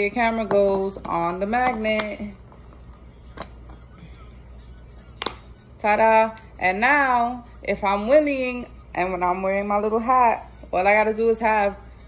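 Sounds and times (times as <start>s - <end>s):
faint background music: 0.0s - 12.0s
low steady hum: 0.0s - 12.0s.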